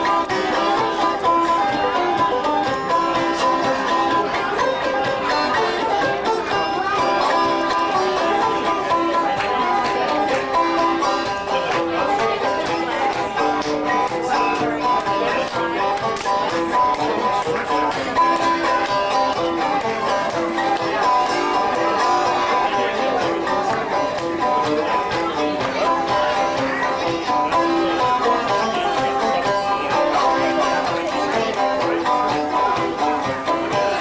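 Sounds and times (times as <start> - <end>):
banjo tune: 0.0 - 34.0.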